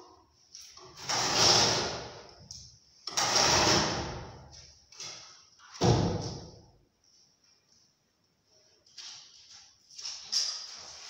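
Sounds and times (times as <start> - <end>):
timber ceiling crashing and scraping: 0.8 - 2.2, 3.0 - 4.4.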